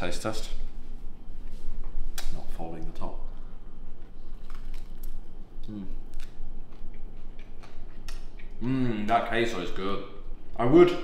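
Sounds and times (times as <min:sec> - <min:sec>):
person humming mmm: 0:05.6 - 0:06.1, 0:08.5 - 0:09.1.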